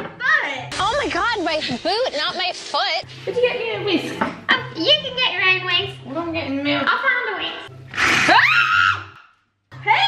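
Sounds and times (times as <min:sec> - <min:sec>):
young woman shrieking: 0:08.2 - 0:09.2.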